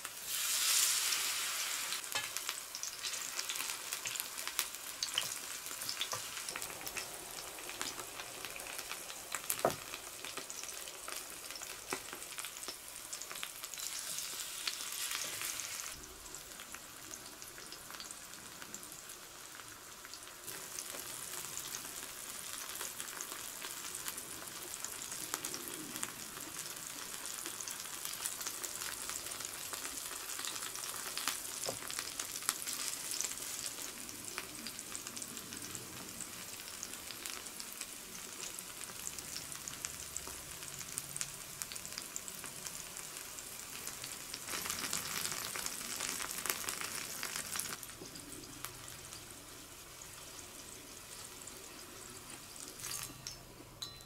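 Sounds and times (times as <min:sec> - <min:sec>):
food sizzling in frying oil: 0:00.0 - 0:53.9.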